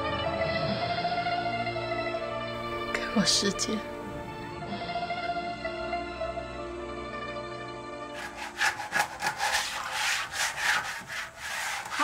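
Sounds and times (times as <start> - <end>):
rough rasping scraping: 8.2 - 12.0.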